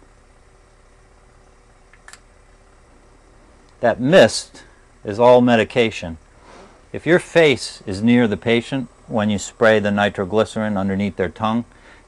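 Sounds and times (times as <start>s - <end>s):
faint steady hum: 0.0s - 12.0s
soft spray hiss: 0.0s - 12.0s.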